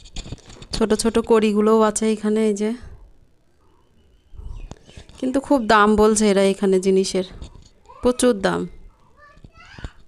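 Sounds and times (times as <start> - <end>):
woman speaking: 0.7 - 2.9, 5.2 - 7.4, 8.0 - 8.8.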